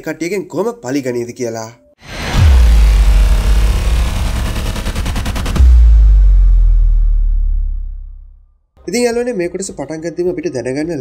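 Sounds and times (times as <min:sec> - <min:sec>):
fast rattling pulse: 0:02.0 - 0:08.4
deep bass boom: 0:02.0 - 0:08.6.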